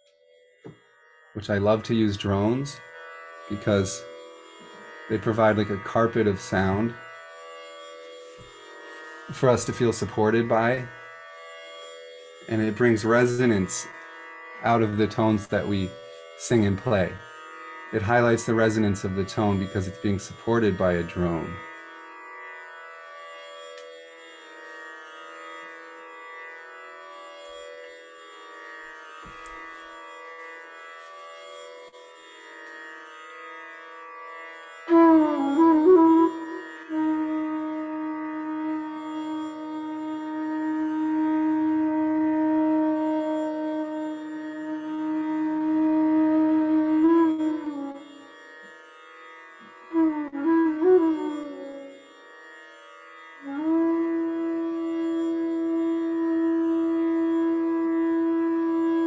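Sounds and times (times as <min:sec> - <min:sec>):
side-blown flute playing: 0:34.8 - 0:48.4, 0:49.9 - 0:52.3, 0:53.4 - 0:59.0.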